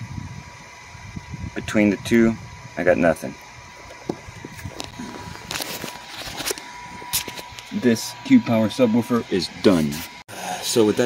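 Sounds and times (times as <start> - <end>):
faint high whine: 0.0 - 11.0
wires being handled: 4.6 - 7.8.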